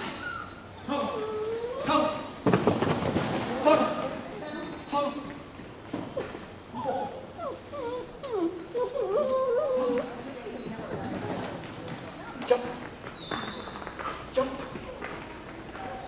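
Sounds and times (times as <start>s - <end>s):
dog whining and yipping: 0.0s - 2.4s, 6.2s - 11.5s, 12.1s - 14.3s.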